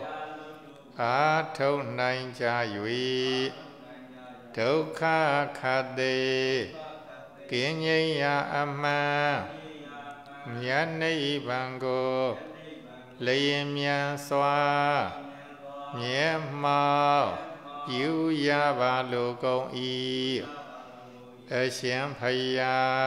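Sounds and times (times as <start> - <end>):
monk chanting into microphone: 0.0 - 23.0.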